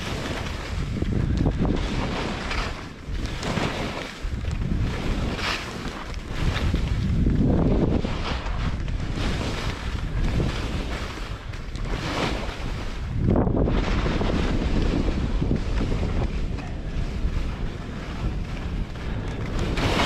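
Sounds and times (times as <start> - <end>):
skis scraping over snow: 0.0 - 20.0
wind on microphone: 0.0 - 20.0.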